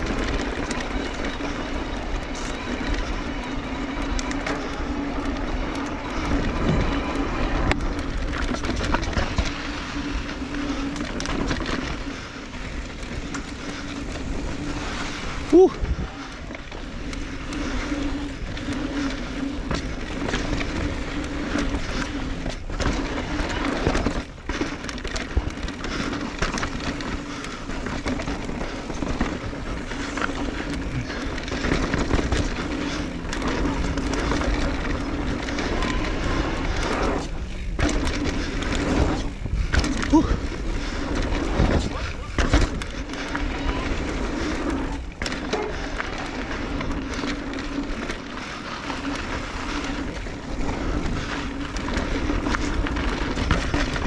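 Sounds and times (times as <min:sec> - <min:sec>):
tyres on dirt and rattling: 0:00.0 - 0:54.0.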